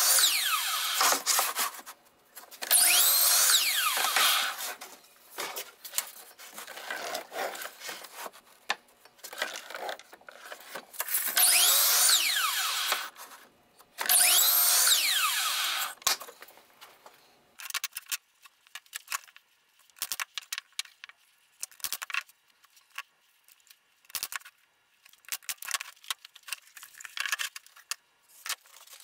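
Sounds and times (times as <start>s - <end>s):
miter saw cutting: 0.0s - 1.4s, 2.6s - 4.8s, 11.2s - 13.2s, 14.0s - 16.0s.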